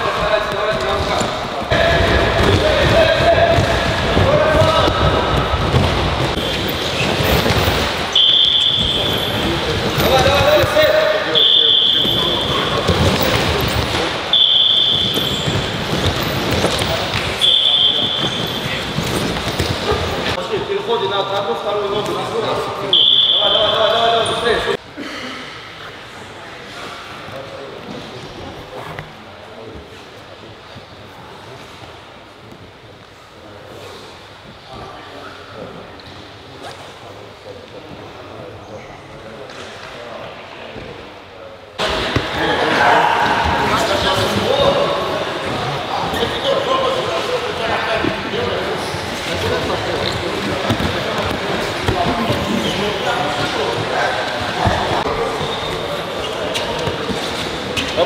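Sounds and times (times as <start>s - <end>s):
men's voices: 0.0s - 24.8s
thuds and footfalls on mats: 1.8s - 7.9s.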